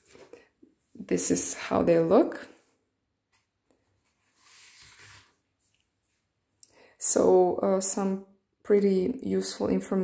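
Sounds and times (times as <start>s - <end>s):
paper booklets rustling on table: 0.0s - 0.7s, 3.3s - 6.3s.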